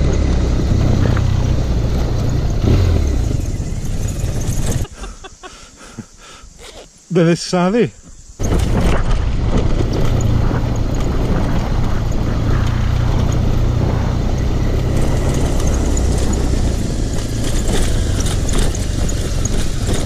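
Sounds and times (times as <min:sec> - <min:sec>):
motorcycle engine running: 0:00.0 - 0:05.0, 0:08.4 - 0:20.0
wind and road noise: 0:00.0 - 0:20.0.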